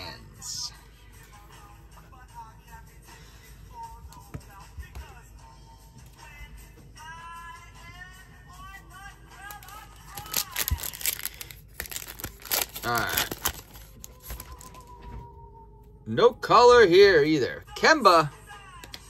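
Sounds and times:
quiet background music: 0:00.0 - 0:19.0
foil wrapper tearing and crinkling: 0:09.4 - 0:14.8.

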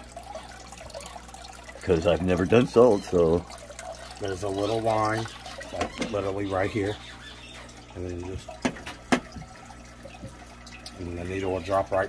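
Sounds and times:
water trickling and dripping: 0:00.0 - 0:12.0.

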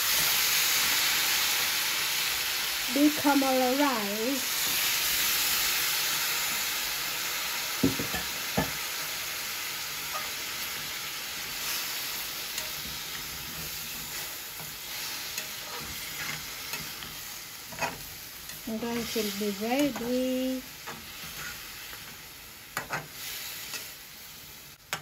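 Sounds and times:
food sizzling in a pan: 0:00.0 - 0:25.0
metal spatula scraping pan: 0:10.0 - 0:10.9, 0:12.5 - 0:20.2, 0:20.8 - 0:22.2, 0:22.8 - 0:24.0.

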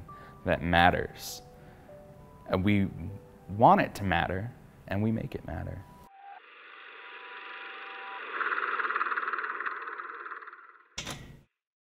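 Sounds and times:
door closer rattling and whirring: 0:07.1 - 0:11.5.

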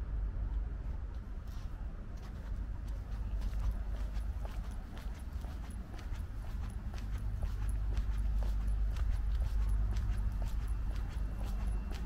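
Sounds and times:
steady low rumble: 0:00.0 - 0:12.0
footsteps on stone tiles: 0:01.4 - 0:12.0.

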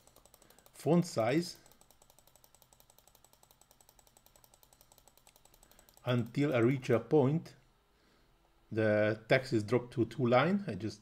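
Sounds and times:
rapid computer mouse clicking: 0:00.0 - 0:07.1.

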